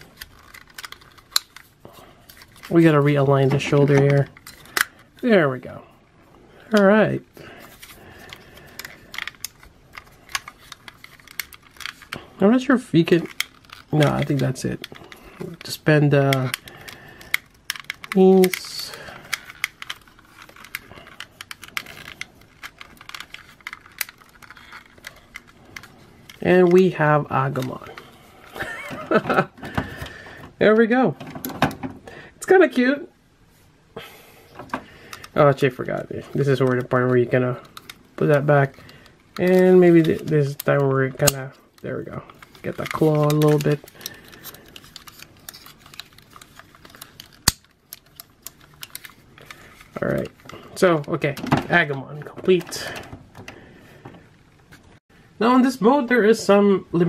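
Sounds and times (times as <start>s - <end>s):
plastic action figure joints clicking: 0.0s - 1.7s, 8.2s - 12.2s, 13.0s - 26.8s, 37.6s - 51.2s.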